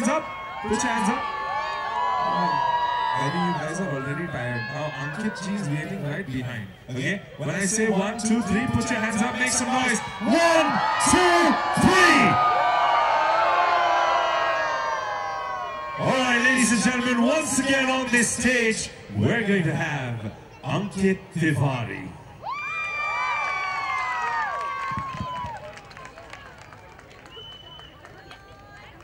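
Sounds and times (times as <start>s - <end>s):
audience cheering and whooping: 0.0s - 6.0s, 7.5s - 17.9s, 22.4s - 28.9s
crowd voices and shouts: 0.0s - 29.0s
crowd whistling: 26.6s - 28.5s.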